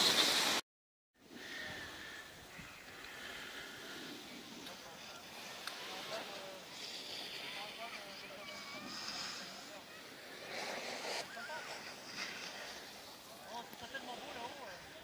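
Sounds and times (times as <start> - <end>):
steady outdoor hiss: 0.0 - 0.6, 1.2 - 15.0
distant voices: 1.3 - 15.0.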